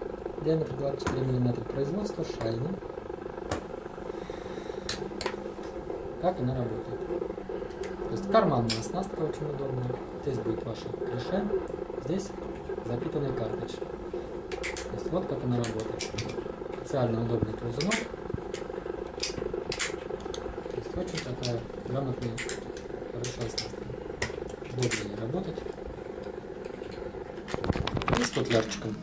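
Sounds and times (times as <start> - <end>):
steady low buzz: 0.0 - 29.0
sharp plastic clicks: 14.5 - 14.9, 17.8 - 20.4.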